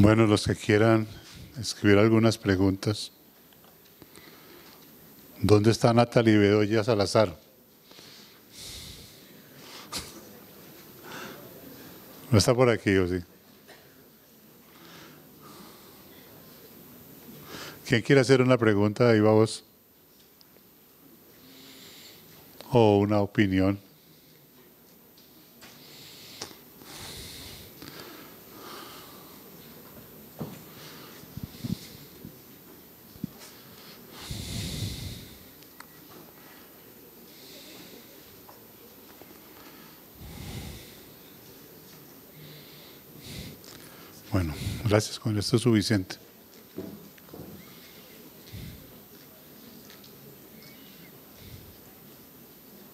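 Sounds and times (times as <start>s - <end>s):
breathy rush of air: 33.8s - 35.6s, 39.6s - 41.2s
breath exhales near microphone: 34.1s - 35.5s.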